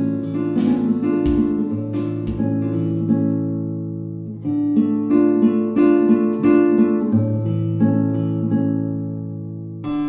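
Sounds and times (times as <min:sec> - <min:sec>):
slow acoustic guitar music: 0:00.0 - 0:10.0.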